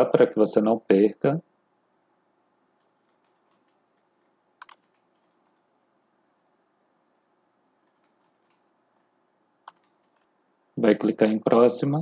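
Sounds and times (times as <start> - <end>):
computer keyboard typing: 2.7 - 5.8, 7.8 - 8.8, 9.6 - 10.4.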